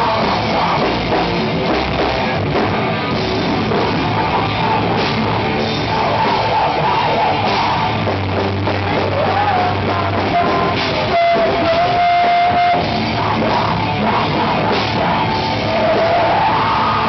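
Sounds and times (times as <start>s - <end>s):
person singing into microphone: 0.0s - 1.5s, 3.9s - 17.0s
live rock band playing: 0.0s - 17.0s.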